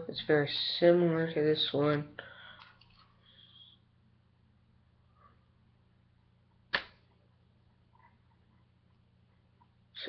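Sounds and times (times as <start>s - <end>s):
rubber band snapping: 6.7s - 7.0s.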